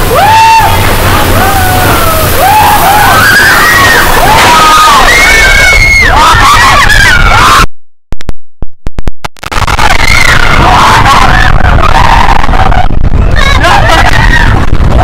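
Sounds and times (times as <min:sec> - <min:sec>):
roller coaster train rumbling: 0:00.0 - 0:06.2, 0:09.6 - 0:15.0
riders screaming and whooping: 0:00.0 - 0:07.7, 0:09.5 - 0:15.0
crackles: 0:08.9 - 0:10.5
wind on microphone: 0:09.4 - 0:15.0.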